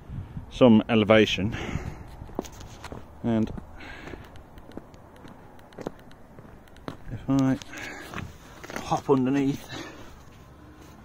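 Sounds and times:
faint outdoor background: 0:00.0 - 0:11.0
footsteps on tarmac: 0:01.7 - 0:11.0.

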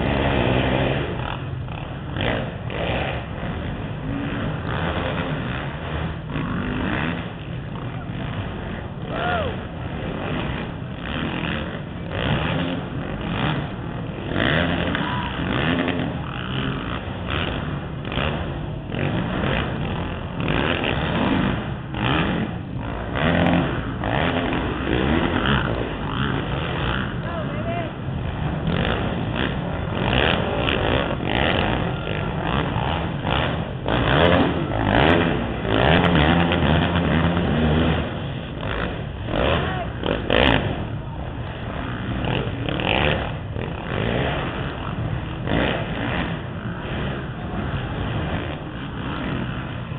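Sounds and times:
quad engines revving: 0:00.0 - 0:49.9
indistinct voices: 0:08.8 - 0:09.7, 0:27.1 - 0:28.1, 0:39.4 - 0:40.3.

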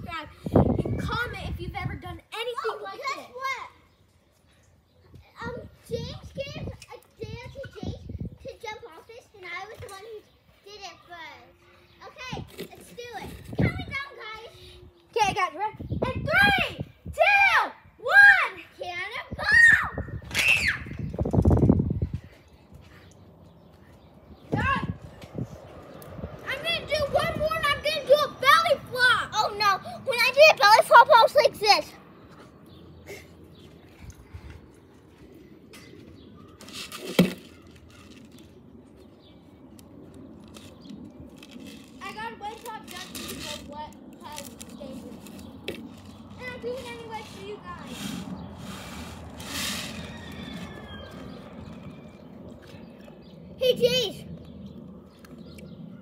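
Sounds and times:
children's voices: 0:00.0 - 0:04.0, 0:04.9 - 0:20.9, 0:23.5 - 0:34.8, 0:41.9 - 0:49.6, 0:50.5 - 0:54.4
child shouting: 0:02.4 - 0:03.7, 0:16.0 - 0:20.9, 0:24.5 - 0:25.0, 0:26.4 - 0:31.9, 0:53.6 - 0:54.2
child whooping and squealing: 0:16.2 - 0:21.1.

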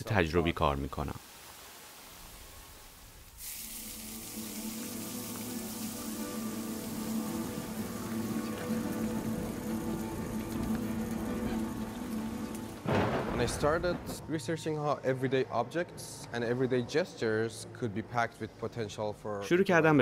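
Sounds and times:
dense even hiss: 0:01.1 - 0:11.8.

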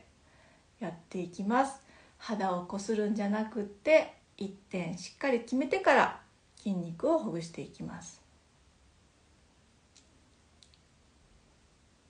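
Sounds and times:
very faint small clicks: 0:09.9 - 0:11.0.

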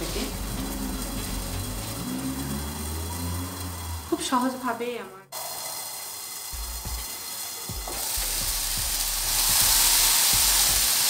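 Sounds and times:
gas stove low rumble: 0:00.0 - 0:04.7, 0:06.4 - 0:11.0
food frying in a pan: 0:00.0 - 0:11.0.

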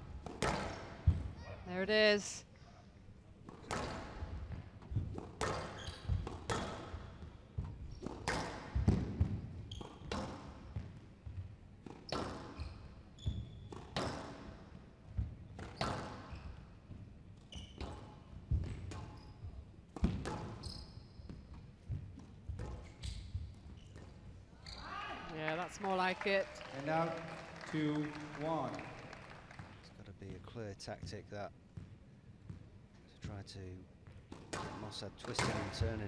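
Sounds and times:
squash ball hitting rackets and walls: 0:00.0 - 0:01.5, 0:03.4 - 0:12.6, 0:13.2 - 0:24.4, 0:34.1 - 0:36.0
shoes squeaking on court floor: 0:03.5 - 0:14.5, 0:15.5 - 0:25.3.

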